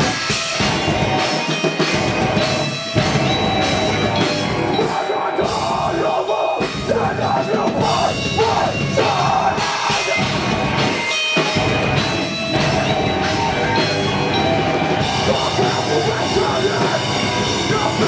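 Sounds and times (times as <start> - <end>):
metal band playing live: 0.0 - 18.0
screamed vocals: 4.8 - 10.4.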